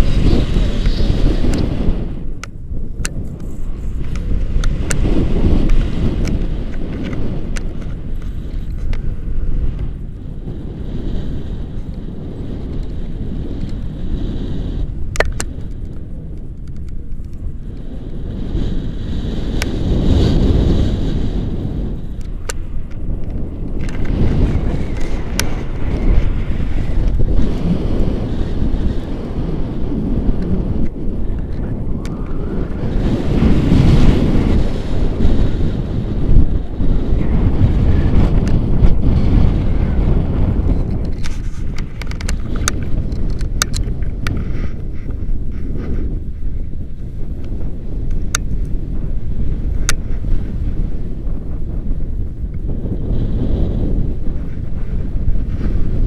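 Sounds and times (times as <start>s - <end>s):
wind buffeting microphone: 0.0s - 56.0s.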